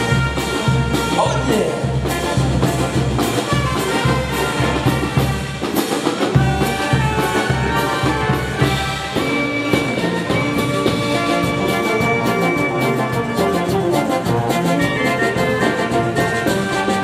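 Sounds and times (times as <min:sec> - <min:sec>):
brass instruments playing melody: 0:00.0 - 0:17.0.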